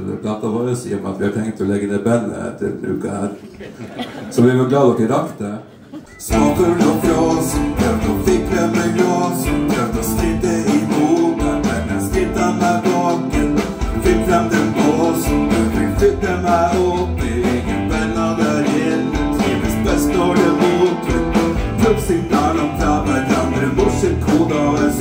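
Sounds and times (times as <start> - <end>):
electric guitar: 6.1 - 25.0
keyboard: 6.1 - 25.0
male singer: 6.2 - 25.0
steady beat: 6.3 - 25.0.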